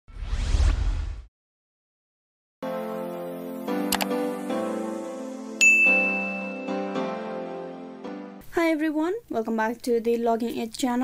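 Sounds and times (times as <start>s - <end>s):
rising whoosh sweep: 0.1s - 1.3s.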